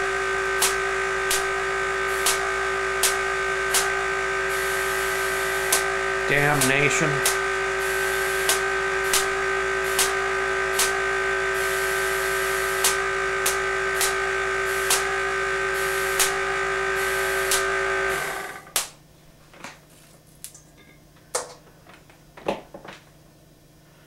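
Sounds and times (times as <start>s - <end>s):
generator motor and belt hum: 0.0s - 24.0s
sharp clicks: 10.8s - 11.0s, 17.4s - 17.7s.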